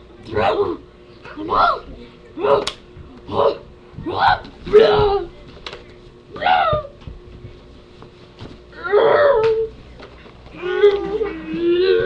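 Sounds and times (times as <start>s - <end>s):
child whimpering whine: 10.5s - 12.0s.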